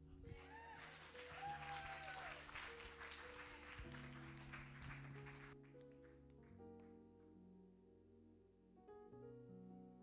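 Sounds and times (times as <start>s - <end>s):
soft background music: 0.0s - 10.0s
congregation clapping: 0.4s - 6.4s.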